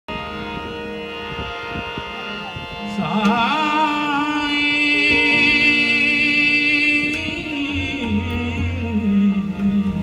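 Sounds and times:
harmonium chord: 0.1 - 10.0.

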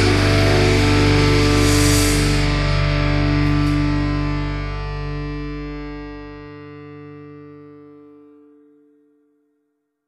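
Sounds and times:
distorted electric guitar chord: 0.0 - 9.0.

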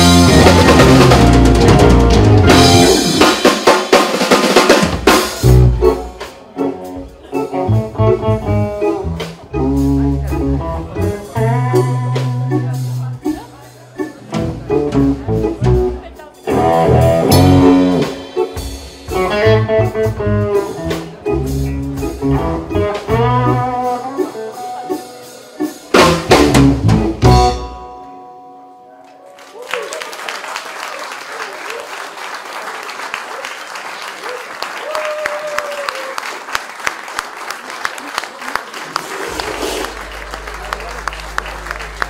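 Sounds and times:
loud accented band hits: 0.0 - 6.5, 24.8 - 27.9, 39.2 - 42.0
live rock band playing: 0.0 - 28.6, 39.0 - 42.0
audience applauding: 29.2 - 42.0.

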